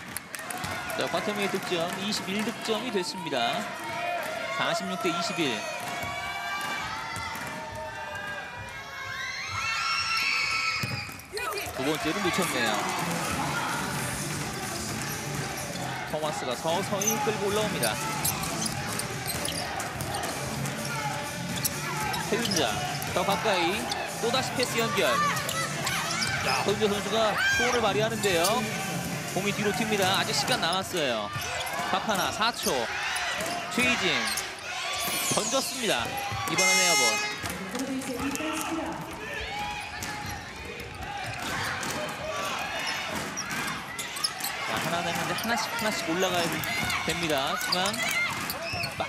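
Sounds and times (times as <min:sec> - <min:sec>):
indoor arena crowd noise: 0:00.0 - 0:49.0.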